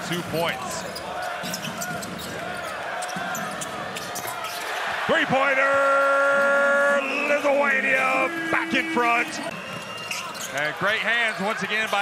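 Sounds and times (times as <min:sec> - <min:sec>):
arena crowd noise: 0:00.0 - 0:12.0
sneaker squeaks: 0:00.6 - 0:04.9, 0:09.5 - 0:12.0.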